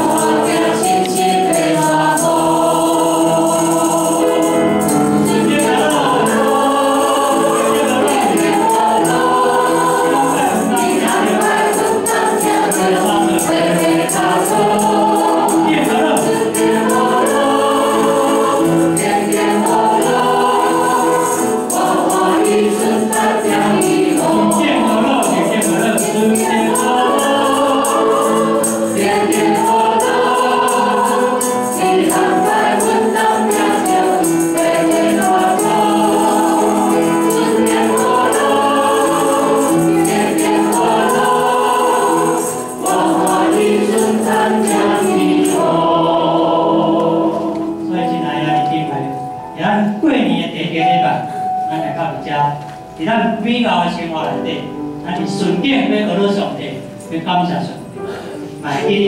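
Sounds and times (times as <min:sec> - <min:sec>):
tambourine shaken in rhythm: 0:00.0 - 0:47.9
group singing a hymn: 0:00.0 - 0:51.2, 0:57.6 - 0:59.0
piano accompaniment: 0:00.0 - 0:59.0.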